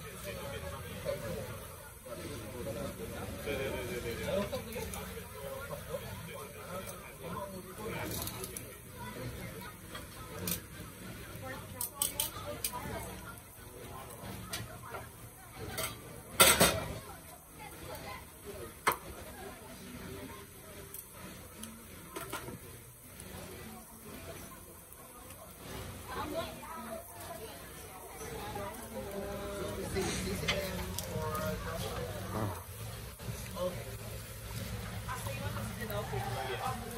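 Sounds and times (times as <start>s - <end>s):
murmuring voices: 0.0s - 36.9s.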